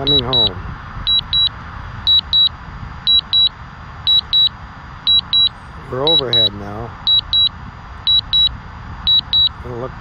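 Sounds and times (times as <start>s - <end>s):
high double beeps: 0.0s - 0.5s, 1.1s - 1.5s, 2.1s - 2.5s, 3.1s - 3.5s, 4.1s - 4.5s, 5.1s - 5.5s, 6.1s - 6.5s, 7.1s - 7.5s, 8.1s - 8.5s, 9.1s - 9.6s
low steady rumble: 0.0s - 10.0s.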